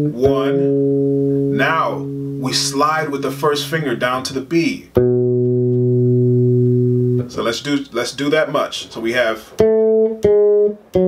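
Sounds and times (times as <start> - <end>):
electric bass note ringing: 0.0 - 4.1, 5.0 - 7.3.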